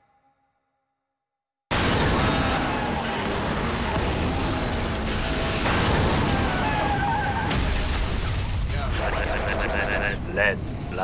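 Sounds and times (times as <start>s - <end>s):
racing car sound effects: 1.7s - 7.9s.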